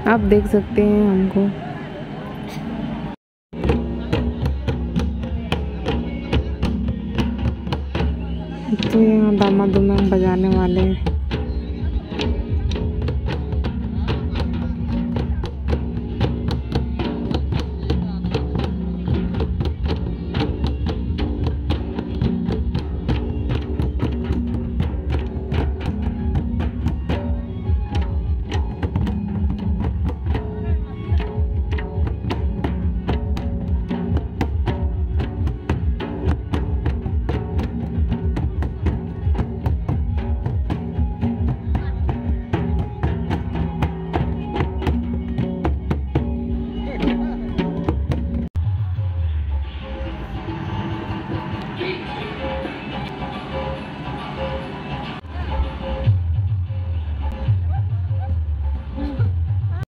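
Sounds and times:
group drumming: 3.6s - 48.6s.

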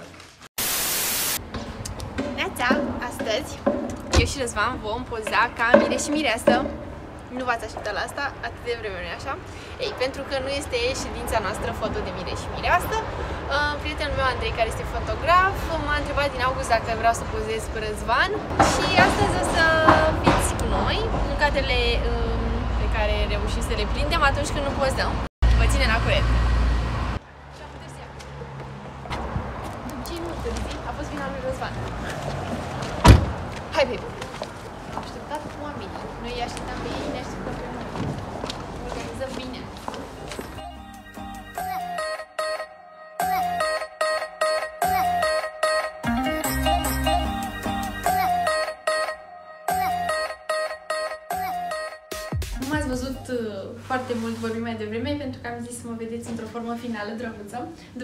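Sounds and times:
static hiss: 0.6s - 1.4s
loud low street rumble: 1.4s - 41.6s.

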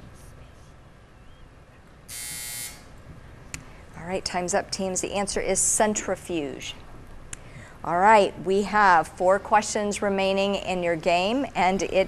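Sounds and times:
electronic buzzer: 2.1s - 2.9s.

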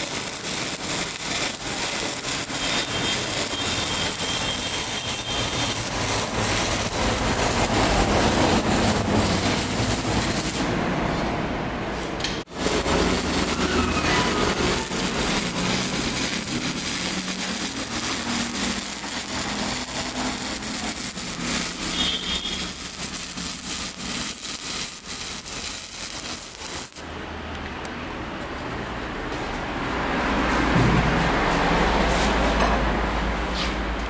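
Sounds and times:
welding arc crackling hiss: 0.0s - 11.2s, 12.2s - 27.1s.

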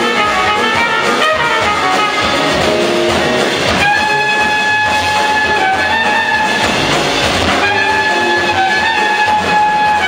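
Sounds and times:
jazz bass piano and drums: 0.0s - 10.0s
trumpet holding high notes: 0.0s - 10.0s.

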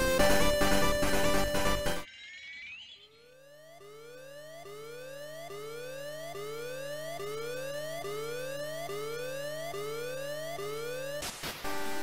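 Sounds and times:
synthesizer tone gliding upward: 2.0s - 11.2s.

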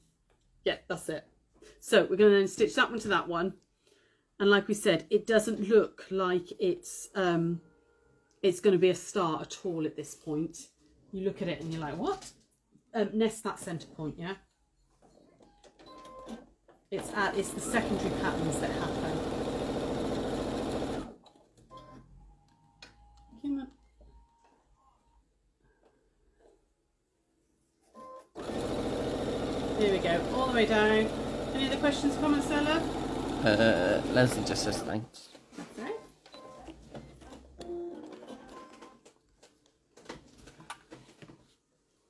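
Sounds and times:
sewing machine stitching: 17.0s - 21.2s, 28.3s - 35.0s.

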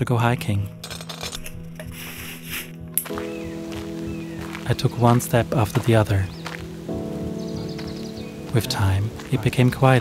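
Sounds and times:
soft music drone: 0.0s - 10.0s.

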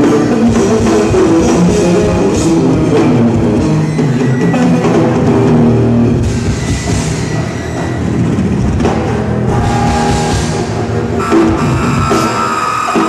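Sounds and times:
busy drumming: 0.0s - 13.0s
electric bass guitar notes: 4.7s - 13.0s.

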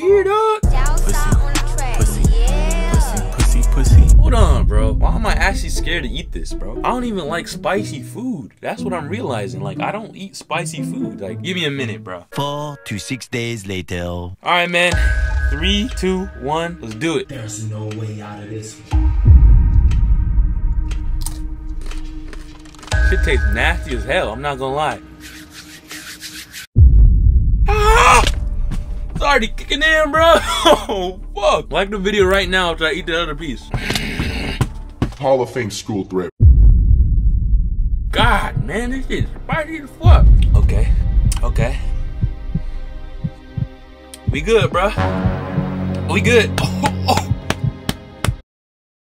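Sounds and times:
heartbeat double thumps: 0.6s - 7.3s, 18.9s - 22.3s, 26.8s - 33.0s, 36.4s - 45.9s, 46.6s - 48.4s
deep bass boom: 0.6s - 7.4s, 18.9s - 22.3s, 26.8s - 33.7s, 36.4s - 45.9s
held low note: 0.7s - 10.1s, 18.9s - 25.1s, 36.4s - 44.4s.

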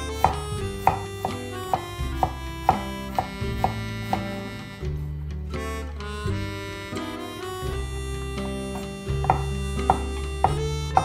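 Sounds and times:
background music: 0.0s - 11.0s
knife strikes on cutting board: 0.2s - 4.3s, 9.2s - 11.0s.

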